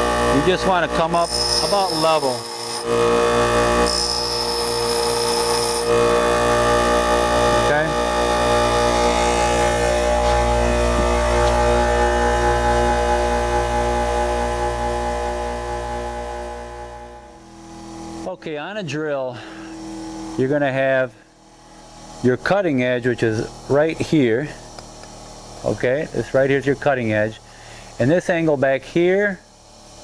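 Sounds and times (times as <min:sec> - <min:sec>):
drill bit grinding on wheel: 0:00.0 - 0:11.9
bench grinder motor hum: 0:00.0 - 0:18.3.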